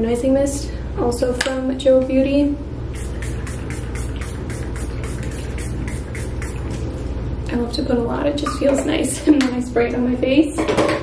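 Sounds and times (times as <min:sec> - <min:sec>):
steady low hum: 0:00.0 - 0:10.5
spray bottle spritzing: 0:03.0 - 0:06.9.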